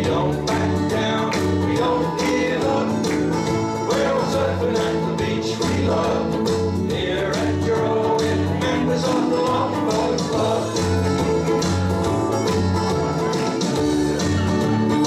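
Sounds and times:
repeating bass line: 0.0 - 15.0
ukulele band strumming: 0.0 - 15.0.

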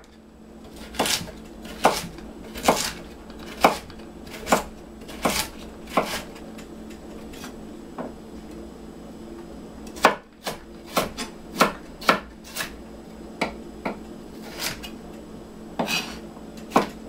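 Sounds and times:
faint steady hum: 0.0 - 17.0
knife chopping on wooden board: 0.7 - 6.3, 10.0 - 12.8, 13.4 - 15.0, 15.8 - 17.0.

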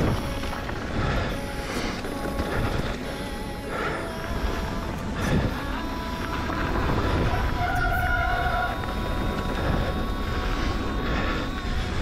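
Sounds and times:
bike tyres rumbling on gravel: 0.0 - 12.0
wind on microphone: 0.0 - 12.0.

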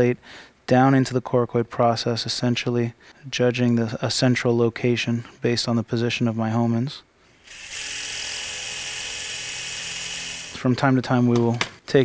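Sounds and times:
power wire driver whirring: 7.4 - 10.7.

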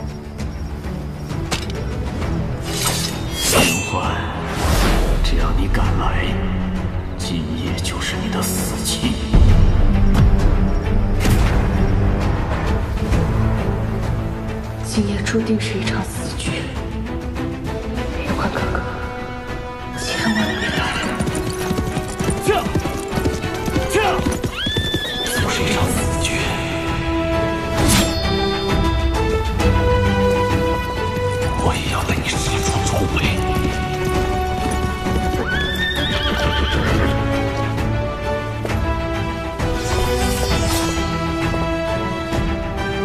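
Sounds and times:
background music: 0.0 - 43.0
sword swish: 2.6 - 3.9
sword drawn with metallic clang: 2.6 - 4.1
horse whinnying: 19.9 - 25.5, 33.3 - 37.6
horse hooves galloping: 20.1 - 26.0, 30.2 - 38.9.

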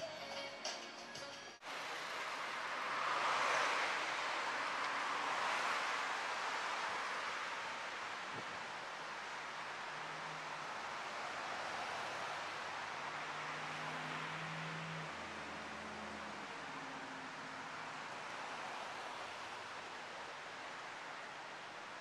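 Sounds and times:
passing cars hiss: 1.6 - 22.0.

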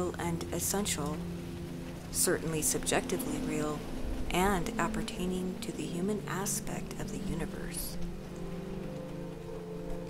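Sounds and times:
rain: 0.0 - 10.0
soft background music: 0.0 - 10.0.

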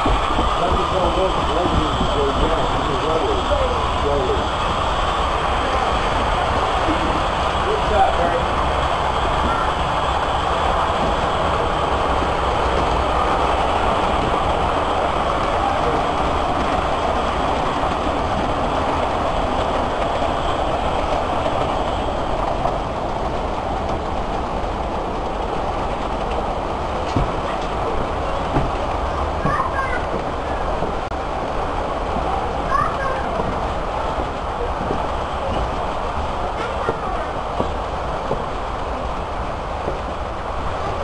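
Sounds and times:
model trains rumbling on tracks: 0.0 - 41.0.

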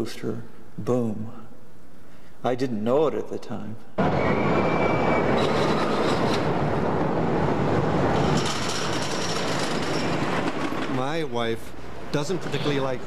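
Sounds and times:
high-pitched squeal: 4.0 - 6.6.

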